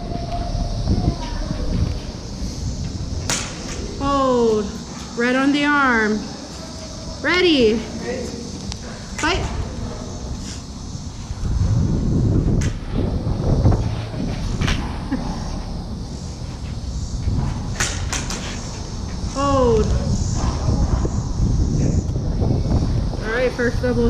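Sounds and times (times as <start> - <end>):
steady low rumble: 0.0 - 24.0.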